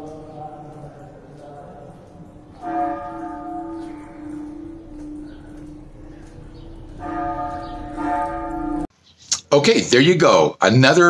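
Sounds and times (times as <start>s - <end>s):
church bell tolling: 0.0s - 8.9s.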